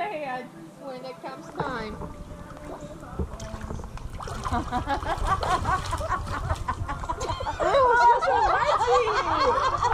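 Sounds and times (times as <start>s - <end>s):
people laughing: 4.3s - 9.9s.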